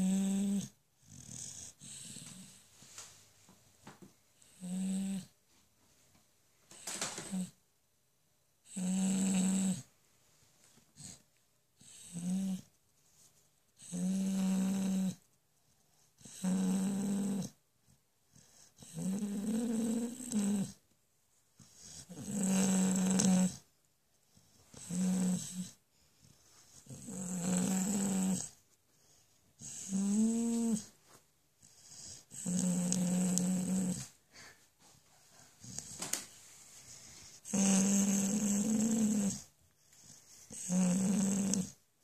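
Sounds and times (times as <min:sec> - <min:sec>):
dog snoring: 0:00.0 - 0:02.7, 0:04.4 - 0:05.4, 0:06.8 - 0:07.6, 0:08.6 - 0:09.9, 0:11.0 - 0:11.2, 0:11.8 - 0:12.7, 0:13.8 - 0:15.3, 0:16.2 - 0:17.6, 0:18.3 - 0:20.8, 0:21.6 - 0:23.7, 0:24.3 - 0:28.6, 0:29.6 - 0:30.9, 0:31.6 - 0:34.2, 0:35.6 - 0:36.1, 0:36.9 - 0:41.8.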